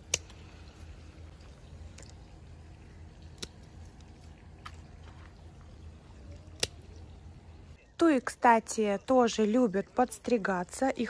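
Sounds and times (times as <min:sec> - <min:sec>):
pruning shears snipping branches: 0:00.0 - 0:00.7, 0:06.3 - 0:06.9.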